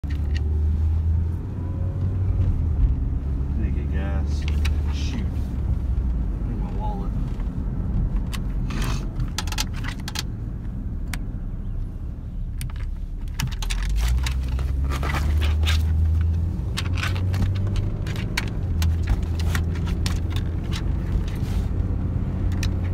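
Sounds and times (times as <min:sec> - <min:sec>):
car cabin rumble: 0:00.0 - 0:22.9.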